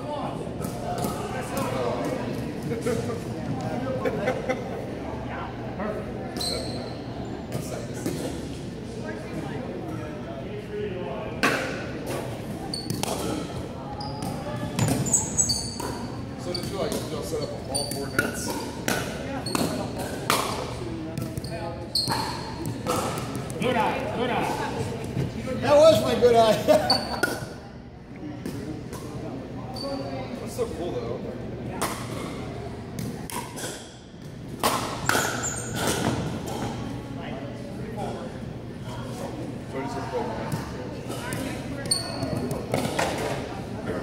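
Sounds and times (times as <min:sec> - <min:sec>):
shoes squeaking on floor: 0:06.4 - 0:07.1, 0:12.6 - 0:18.5, 0:21.2 - 0:23.2, 0:26.9 - 0:27.2, 0:35.0 - 0:36.3, 0:41.8 - 0:42.8.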